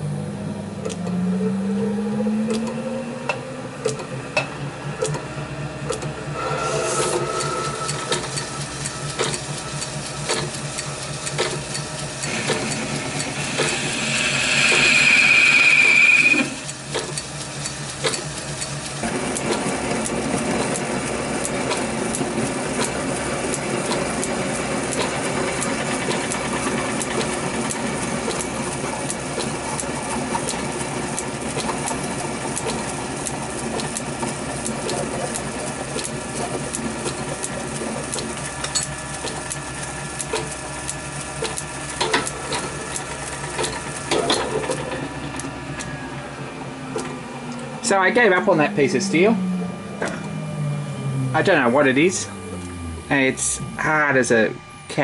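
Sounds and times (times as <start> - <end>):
metal lathe cutting steel: 6.2 - 55.0
cutting tool squealing: 12.2 - 16.8.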